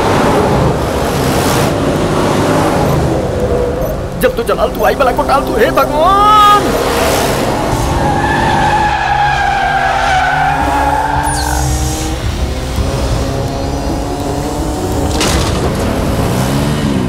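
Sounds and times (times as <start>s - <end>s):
background music: 0.0s - 17.0s
vehicle engines running: 0.0s - 17.0s.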